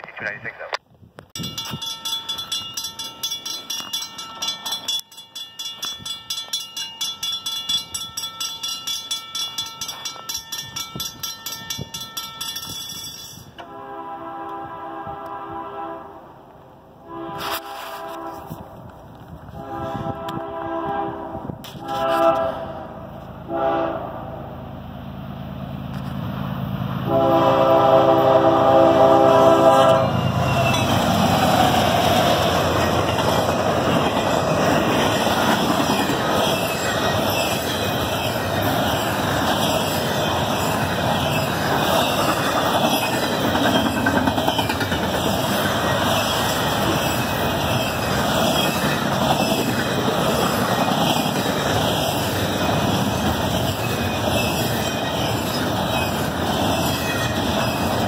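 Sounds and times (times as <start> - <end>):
train cars rolling on rails: 1.2 - 15.4, 16.4 - 58.0
locomotive air horn blast: 13.6 - 16.3, 17.0 - 18.6, 19.5 - 24.2, 27.0 - 30.2.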